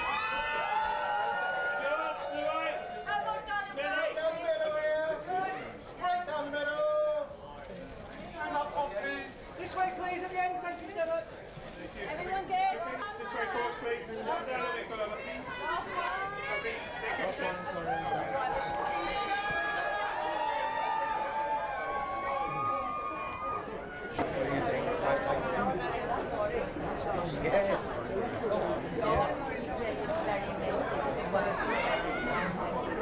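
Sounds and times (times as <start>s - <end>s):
crowd chatter: 0.0s - 33.0s.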